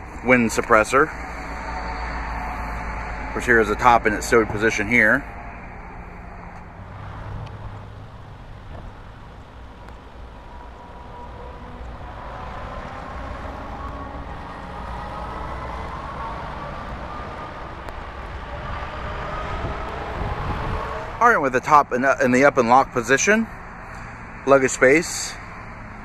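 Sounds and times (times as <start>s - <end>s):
motor whine rising in pitch: 0.0s - 7.9s
low hum: 0.0s - 21.2s.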